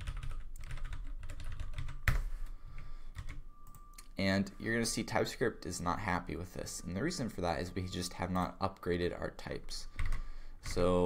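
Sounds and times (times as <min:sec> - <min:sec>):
typing on computer keyboard: 0:00.0 - 0:02.3, 0:03.1 - 0:03.8, 0:10.0 - 0:10.8.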